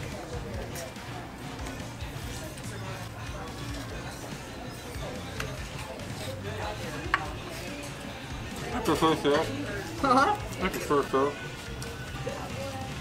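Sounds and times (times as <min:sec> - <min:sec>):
background music: 0:00.0 - 0:13.0
indistinct chatter: 0:00.0 - 0:13.0.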